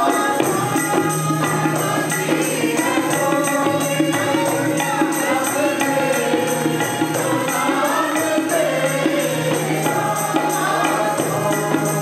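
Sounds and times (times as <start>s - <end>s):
group singing a psalm: 0.0s - 12.0s
harmonium drone: 0.0s - 12.0s.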